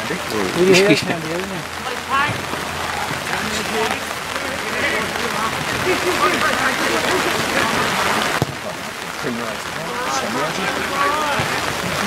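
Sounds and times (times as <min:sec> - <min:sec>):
faint voices: 0:00.0 - 0:12.0
rain falling: 0:00.0 - 0:12.0.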